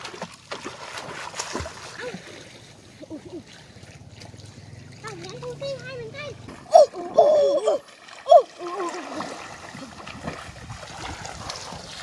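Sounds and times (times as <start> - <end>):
water splashing: 0.0 - 12.0.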